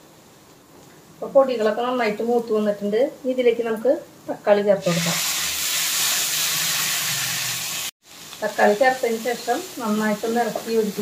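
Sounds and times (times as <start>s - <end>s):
spices sizzling in hot oil: 4.8s - 11.0s.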